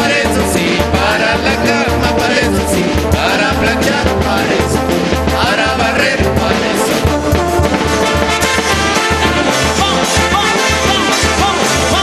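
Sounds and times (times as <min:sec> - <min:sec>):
bass drum and cymbals: 0:00.0 - 0:12.0
brass band playing: 0:00.0 - 0:12.0
tuba bass line: 0:00.0 - 0:12.0.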